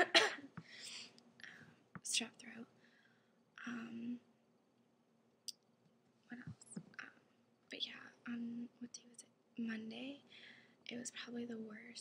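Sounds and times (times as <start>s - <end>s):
woman whispering: 2.0s - 2.7s, 3.6s - 4.2s, 6.3s - 10.3s, 10.9s - 12.0s.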